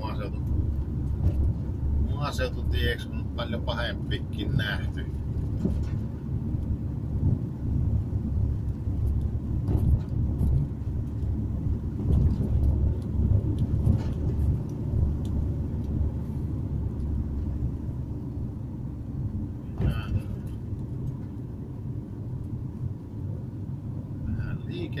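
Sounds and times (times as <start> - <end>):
car engine rumble: 0.0 - 25.0
tyres on asphalt: 0.0 - 25.0.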